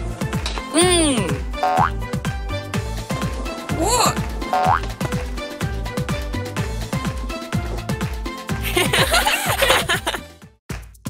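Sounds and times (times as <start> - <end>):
upbeat cartoon music: 0.7 - 11.0.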